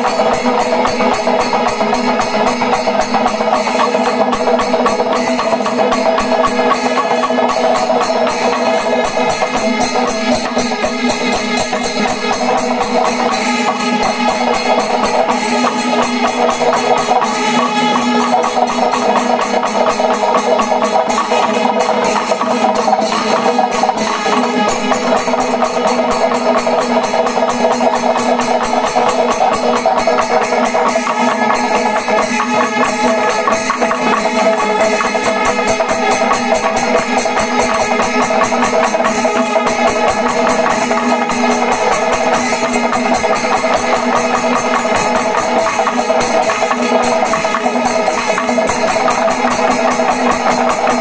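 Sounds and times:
cymbals clashing: 0.0s - 51.0s
drums playing fast rhythm: 0.0s - 51.0s.

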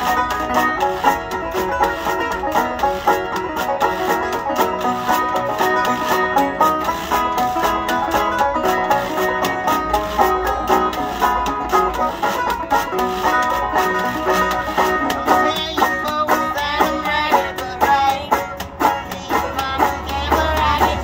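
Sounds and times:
banjo picking: 0.0s - 21.0s
resonator guitar: 0.0s - 21.0s
washboard rhythm: 0.0s - 21.0s.

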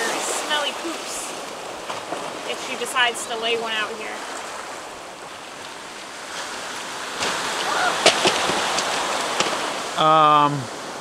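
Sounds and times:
surf washing on rocky shore: 0.0s - 11.0s
sharp knocks and clatters: 8.0s - 9.6s.

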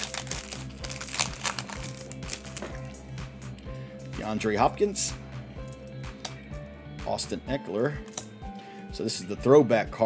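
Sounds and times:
trading cards being shuffled: 0.0s - 2.9s
background music: 0.0s - 10.0s.

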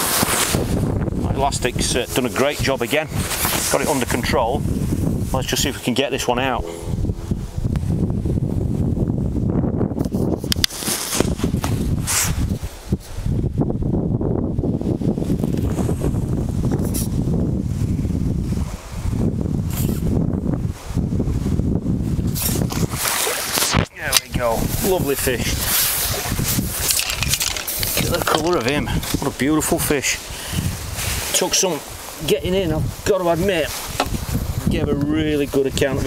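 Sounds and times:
wind rumble on microphone: 0.0s - 36.0s.

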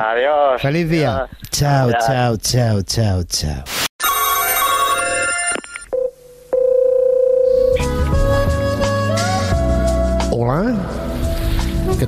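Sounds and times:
electronic telephone tone: 4.0s - 7.9s
steady telephone tone: 4.0s - 7.9s.

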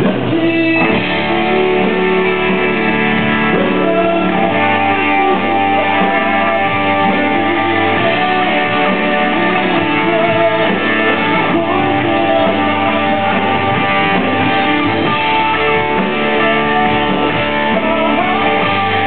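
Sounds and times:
guitar accompaniment: 0.0s - 19.0s
man singing into a microphone: 0.0s - 19.0s.

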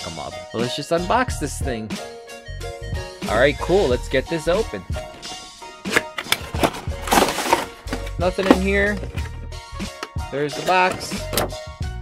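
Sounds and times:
background music: 0.0s - 12.0s
cardboard scraping and rustling: 5.0s - 9.4s.

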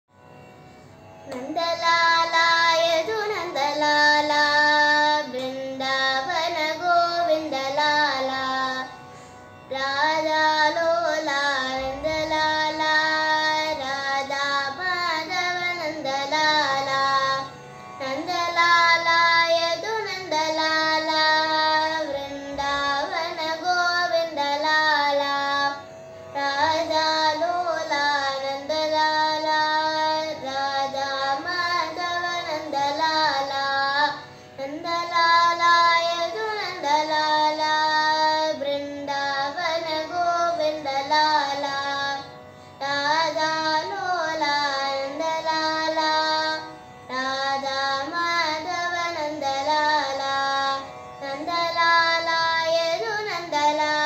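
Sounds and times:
girl singing: 1.3s - 9.0s, 9.7s - 54.0s.

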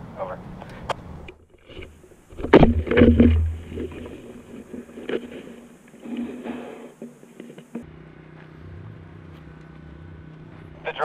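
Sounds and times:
steady low hum: 0.0s - 11.0s
knocking and rustling: 1.4s - 7.8s.

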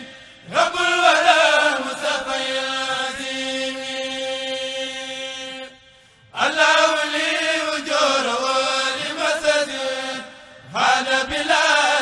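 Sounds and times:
group chanting unaccompanied: 0.0s - 12.0s.

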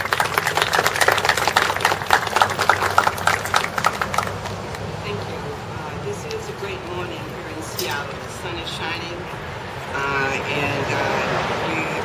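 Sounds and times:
crowd applauding: 0.0s - 5.0s.

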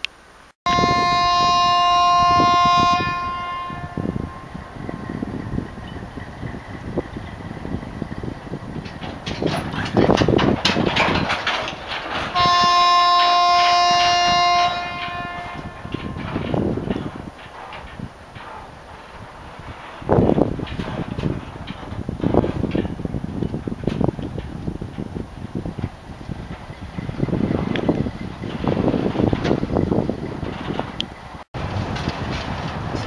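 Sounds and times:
locomotive horn blasts: 0.7s - 5.0s, 12.2s - 17.2s
train wagons rumbling: 0.7s - 33.0s
wheels and couplings knocking: 3.2s - 33.0s.

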